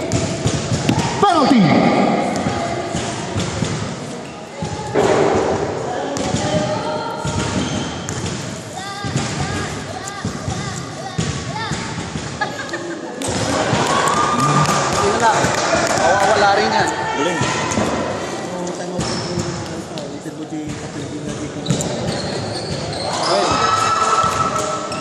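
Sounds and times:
people talking with echo: 0:00.0 - 0:25.0.

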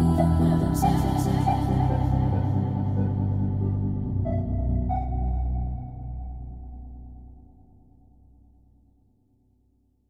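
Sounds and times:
deep bass: 0:00.0 - 0:09.1.

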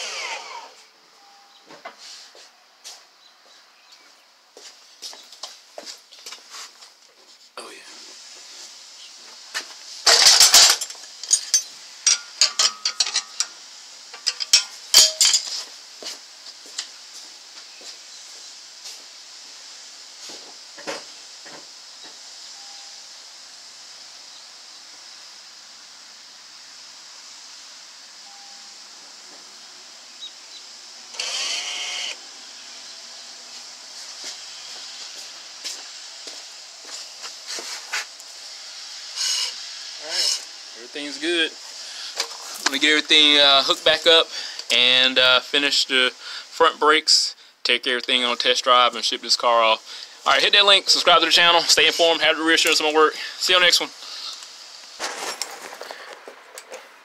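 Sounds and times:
brake motor whir: 0:00.0 - 0:00.9, 0:31.1 - 0:35.6
steady hiss: 0:00.0 - 0:57.0.

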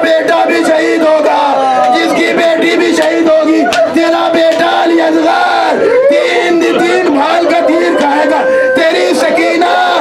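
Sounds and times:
crowd crying: 0:00.0 - 0:10.0
man wailing a lament through microphone: 0:00.0 - 0:10.0.

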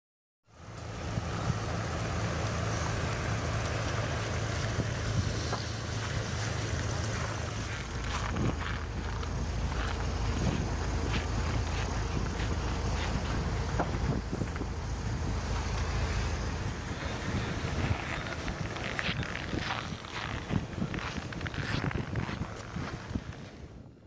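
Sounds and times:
car engine running: 0:00.5 - 0:23.4
wind noise on microphone: 0:00.9 - 0:24.0.

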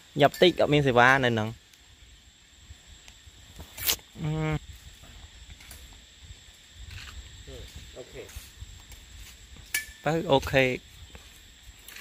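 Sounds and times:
person humming: 0:04.2 - 0:04.6.

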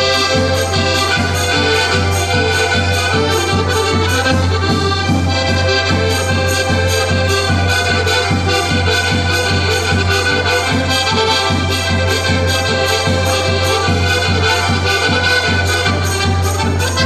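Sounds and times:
accordions playing dance tune: 0:00.0 - 0:17.0.

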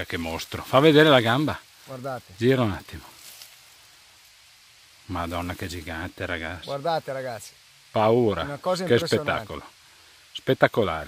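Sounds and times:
faint crackles: 0:00.0 - 0:11.0
outdoor background hiss: 0:00.0 - 0:11.0.

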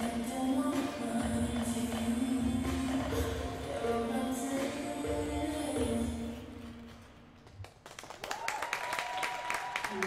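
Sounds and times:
skating music: 0:00.0 - 0:07.8
audience clapping: 0:07.4 - 0:10.0.

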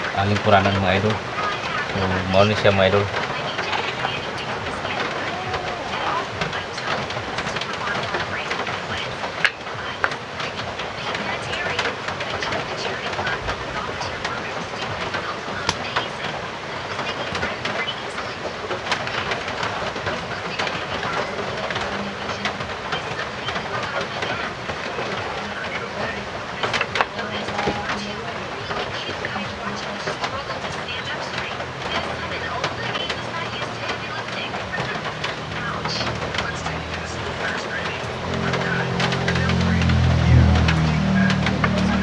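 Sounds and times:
heavy rain hissing: 0:00.0 - 0:42.0.

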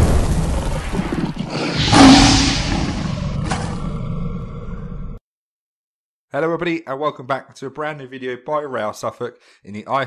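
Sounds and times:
lion roar: 0:00.4 - 0:05.2.

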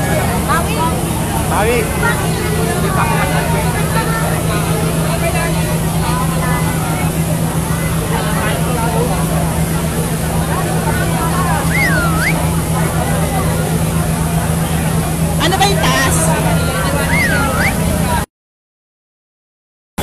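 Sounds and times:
crowd voices: 0:00.0 - 0:18.3
fire truck engine droning: 0:00.0 - 0:18.3.

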